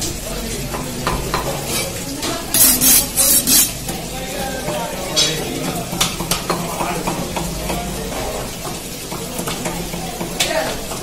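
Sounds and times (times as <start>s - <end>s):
knife scraping: 1.6s - 3.8s.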